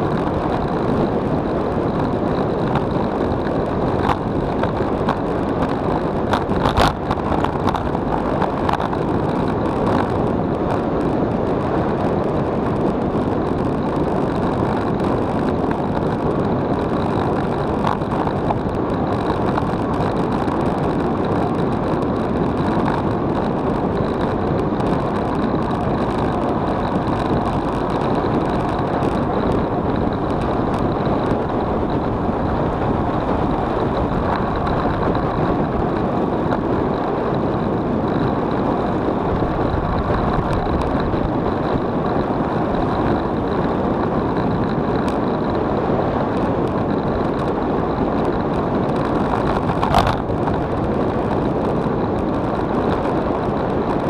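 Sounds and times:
bicycle tyre and road noise: 0:00.0 - 0:54.0
wind on microphone: 0:00.0 - 0:54.0.

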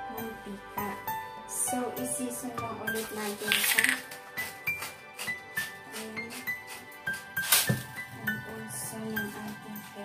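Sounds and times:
background music with melody: 0:00.0 - 0:10.0
seasoning shaker rattling: 0:03.3 - 0:05.3.

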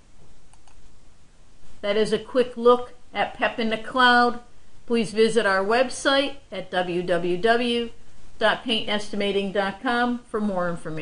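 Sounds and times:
background hiss: 0:00.0 - 0:11.0
computer mouse clicks: 0:00.4 - 0:00.9.

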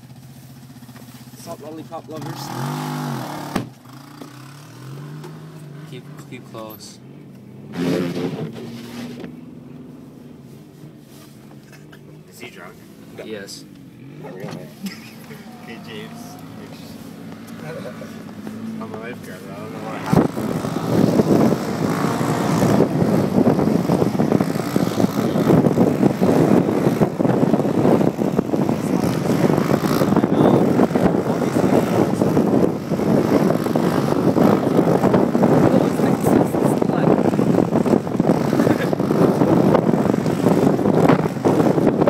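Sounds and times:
car engine and road noise: 0:00.0 - 0:42.0.

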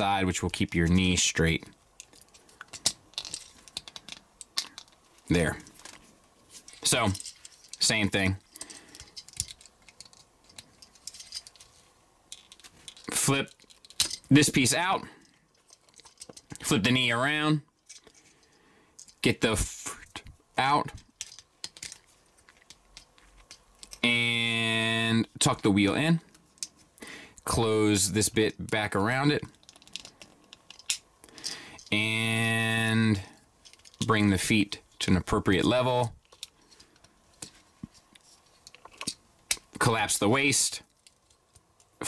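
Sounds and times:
plastic parts clicking and rattling: 0:00.0 - 0:16.8, 0:17.7 - 0:19.3, 0:20.9 - 0:24.0, 0:26.3 - 0:27.0, 0:29.4 - 0:32.0, 0:33.6 - 0:34.1, 0:36.2 - 0:39.9, 0:40.8 - 0:42.0.

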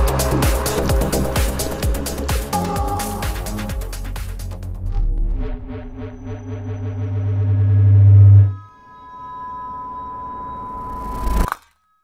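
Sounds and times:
deep bass drone: 0:00.0 - 0:08.6
synth build-up: 0:02.6 - 0:11.4
high electronic tone: 0:02.6 - 0:11.7.

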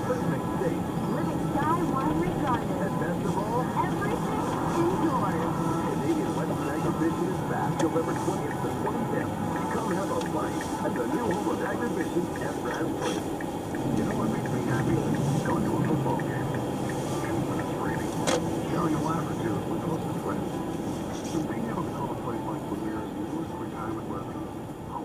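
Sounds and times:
car radio talk: 0:00.0 - 0:25.0
engine and tyre rumble: 0:00.0 - 0:25.0.

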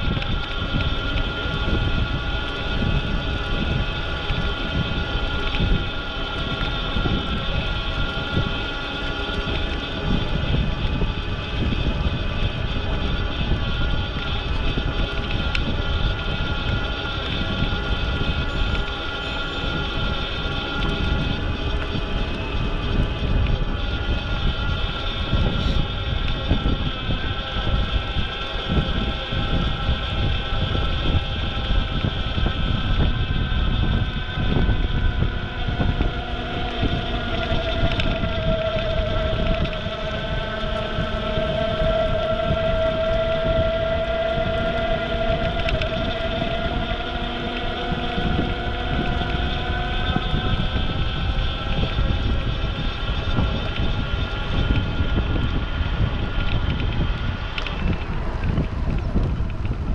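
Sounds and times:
steady multi-pitched whine: 0:00.0 - 0:59.9
wind rushing over microphone: 0:00.0 - 0:59.9.

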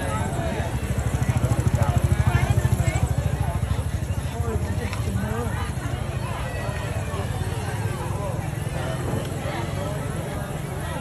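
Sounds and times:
people chattering: 0:00.0 - 0:11.0
small engine throbbing: 0:00.0 - 0:11.0.

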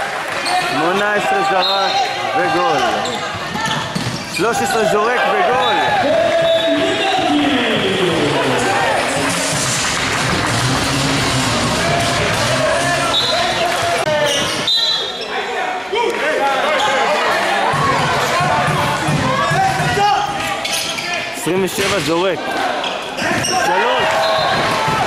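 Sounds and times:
people shouting in a hall: 0:00.0 - 0:09.8, 0:10.8 - 0:21.4, 0:22.3 - 0:25.0.

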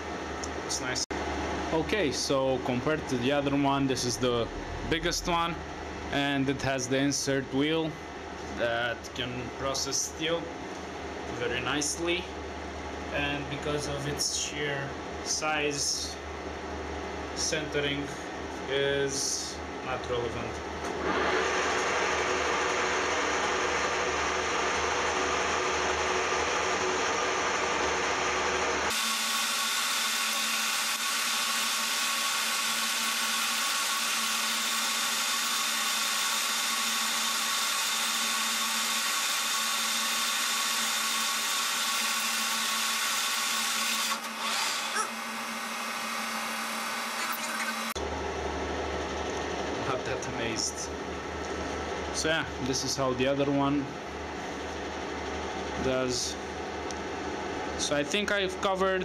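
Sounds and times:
metal lathe whirring: 0:21.0 - 0:48.0.

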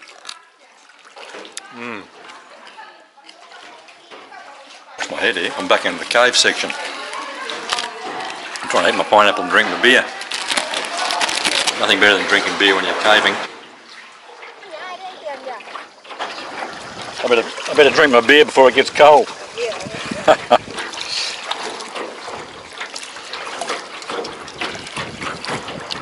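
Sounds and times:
oar splashing water: 0:00.0 - 0:26.0
distant voices talking: 0:00.4 - 0:13.8.

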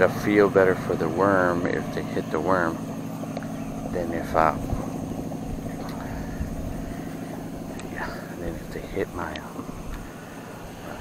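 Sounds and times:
low engine-like hum: 0:00.0 - 0:11.0.

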